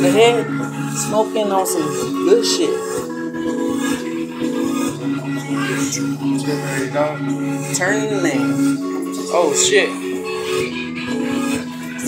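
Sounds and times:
hip-hop beat: 0.0s - 12.0s.

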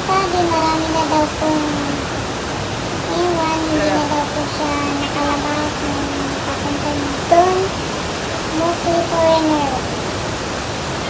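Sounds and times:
high-pitched voice: 0.0s - 2.1s, 3.1s - 7.8s, 8.5s - 10.1s
waterfall roaring: 0.0s - 11.0s.

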